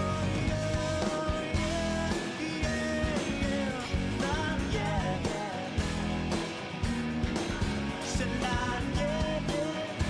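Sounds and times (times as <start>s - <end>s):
drum beat: 0.0s - 10.0s
guitar: 0.0s - 10.0s
rock band music: 0.0s - 10.0s.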